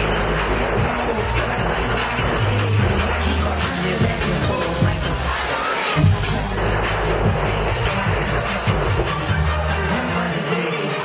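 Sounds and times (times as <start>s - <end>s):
crowd cheering: 0.0s - 11.0s
loud live concert music: 0.0s - 11.0s.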